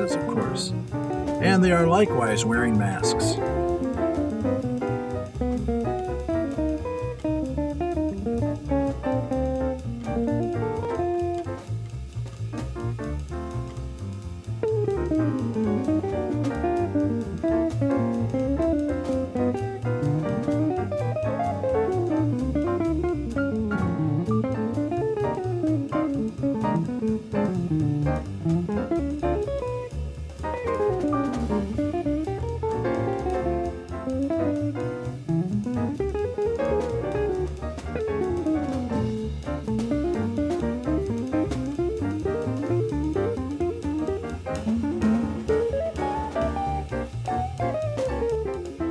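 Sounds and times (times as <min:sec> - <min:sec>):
electric guitar soloing: 0:00.0 - 0:11.5, 0:14.6 - 0:48.9
drum kit: 0:00.0 - 0:48.9
piano: 0:00.0 - 0:48.9
walking double bass: 0:00.0 - 0:48.9.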